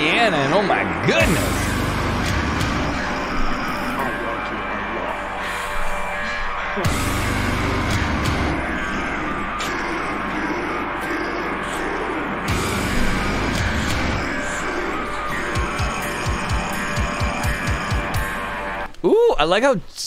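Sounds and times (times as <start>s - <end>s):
heavy metal song: 0.0s - 18.9s.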